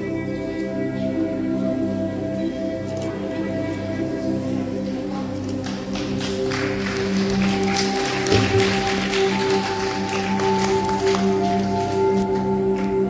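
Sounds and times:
calm meditative music: 0:00.0 - 0:13.0.

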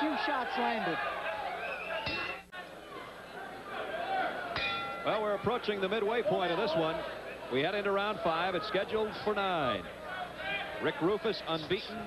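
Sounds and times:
crowd chatter and murmuring: 0:00.0 - 0:12.0.

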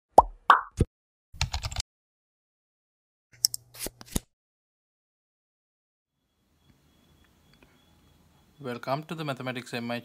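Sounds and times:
plops dropping in pitch: 0:00.2 - 0:00.9.

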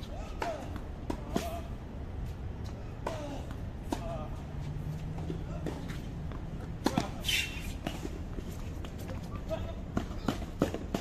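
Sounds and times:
voices: 0:00.0 - 0:02.0, 0:02.6 - 0:11.0
tennis ball bouncing on hard court: 0:05.2 - 0:08.2.

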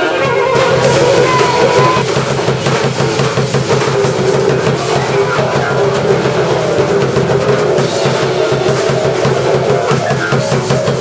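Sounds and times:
drum kit playing: 0:00.0 - 0:11.0.

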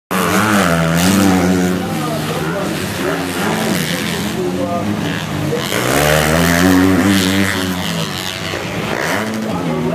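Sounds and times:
motorbike engines revving hard: 0:00.1 - 0:09.9.

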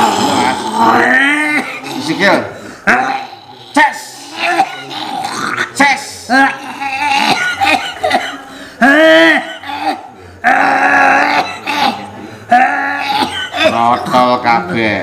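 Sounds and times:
man groaning: 0:00.0 - 0:08.2, 0:08.8 - 0:14.0
man belching loudly: 0:00.0 - 0:14.8.

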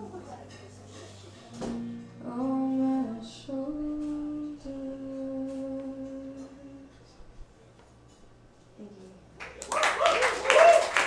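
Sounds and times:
woman singing held notes: 0:02.2 - 0:07.1.

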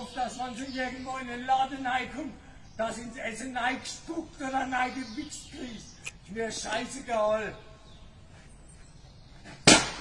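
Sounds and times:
low outdoor background: 0:00.0 - 0:10.0
sharp loud bang: 0:09.6 - 0:10.0.

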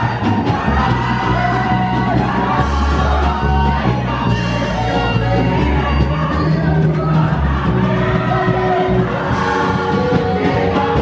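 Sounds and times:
crowd singing along: 0:00.0 - 0:11.0.

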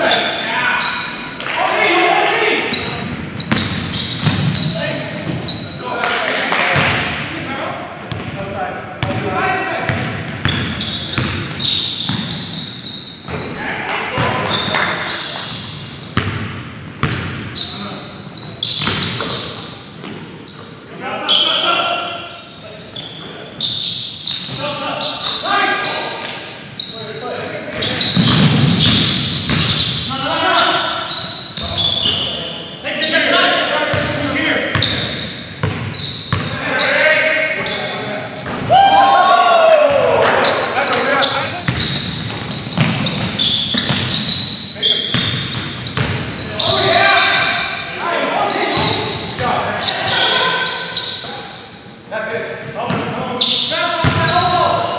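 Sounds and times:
basketball bouncing on hardwood floor: 0:28.2 - 0:29.8, 0:41.7 - 0:44.1, 0:45.1 - 0:46.2
players shouting indistinctly: 0:38.6 - 0:41.1.

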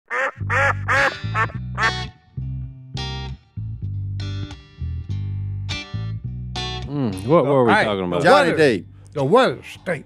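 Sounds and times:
duck quacks: 0:00.1 - 0:02.1
theme music with bass guitar: 0:00.1 - 0:10.0.

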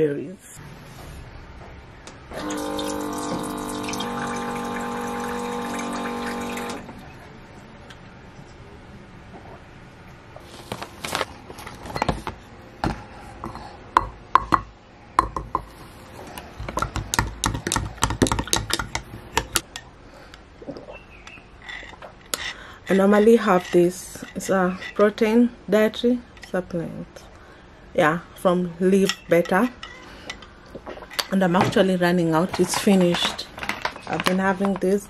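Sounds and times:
small pump motor running: 0:02.3 - 0:07.0
water pouring into glass: 0:02.4 - 0:06.9.

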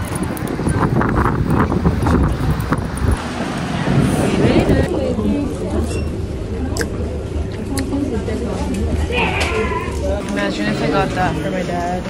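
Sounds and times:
wind buffeting microphone: 0:00.0 - 0:05.2.

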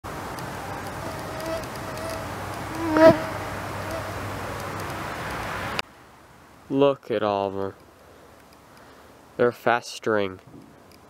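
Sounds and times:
flying insects buzzing: 0:00.1 - 0:05.3
outdoor hiss: 0:00.1 - 0:11.0.

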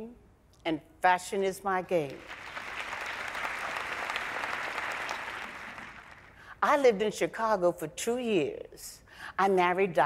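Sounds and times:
audience applauding: 0:02.2 - 0:06.4.

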